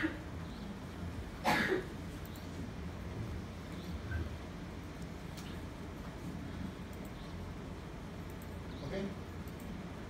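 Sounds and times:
low room hum: 0:00.0 - 0:10.0
man coughing: 0:01.4 - 0:02.0.

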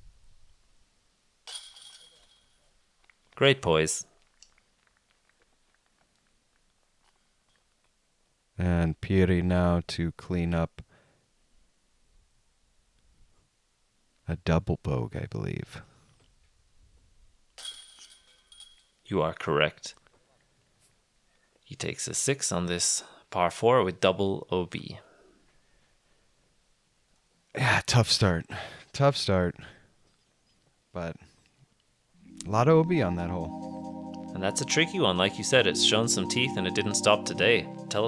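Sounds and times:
disc hitting metal basket chains: 0:01.5 - 0:02.7, 0:17.6 - 0:19.1.

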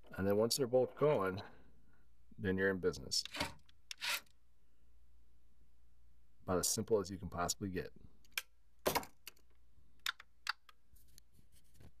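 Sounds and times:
hands tapping plastic devices: 0:09.2 - 0:10.8.

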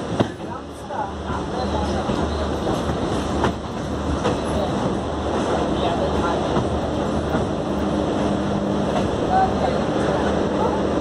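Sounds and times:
train wheels rolling over rail joints: 0:00.0 - 0:11.0.

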